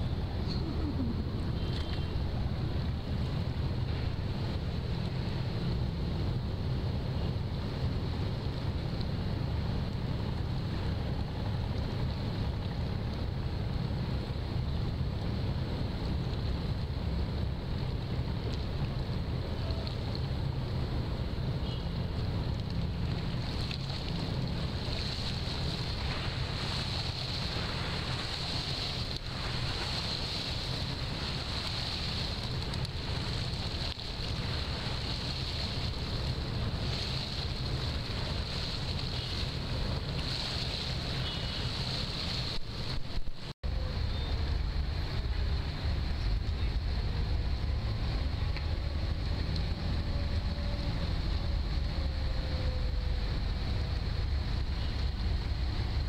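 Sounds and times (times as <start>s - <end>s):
waterside ambience: 0.0s - 56.0s
wind buffeting microphone: 2.2s - 43.5s.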